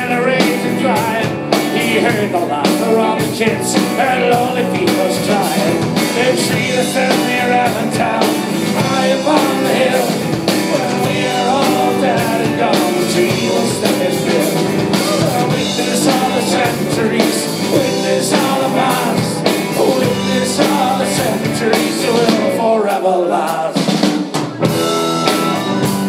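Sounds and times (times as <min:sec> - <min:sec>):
electric guitar: 0:00.0 - 0:22.7, 0:24.4 - 0:26.0
person singing: 0:00.0 - 0:24.0
bass guitar: 0:00.0 - 0:26.0
drums: 0:00.0 - 0:26.0
keyboard: 0:00.0 - 0:26.0.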